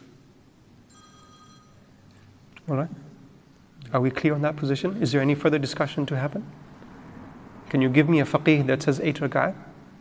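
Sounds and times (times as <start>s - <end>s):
high electronic ring tones: 0.9s - 2.0s.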